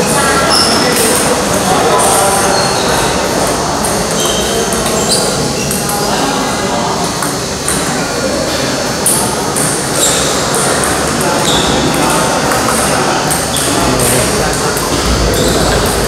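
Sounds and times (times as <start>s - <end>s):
voices chattering: 0.0s - 16.0s
table tennis balls clicking: 9.0s - 16.0s.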